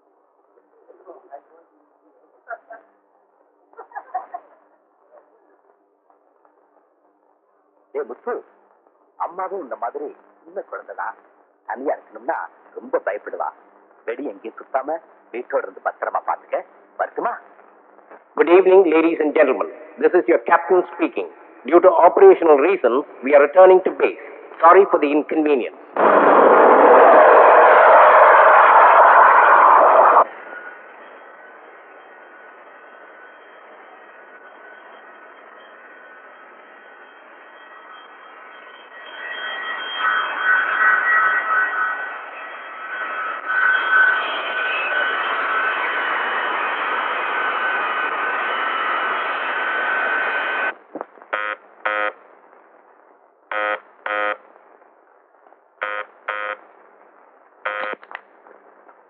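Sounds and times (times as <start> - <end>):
jet engines running: 26.0 - 30.7, 44.5 - 51.0
electric bell ringing: 30.5 - 46.5.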